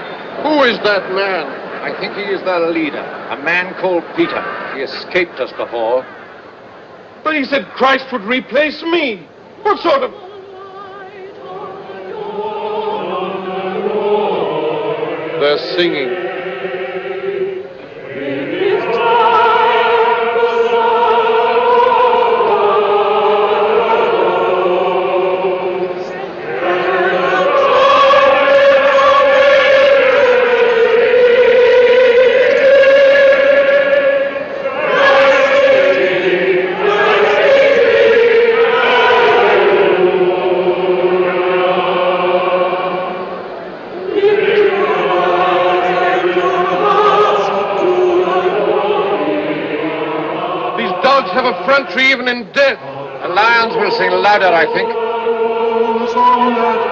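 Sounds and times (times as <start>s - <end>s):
group singing a hymn: 0.0s - 56.9s.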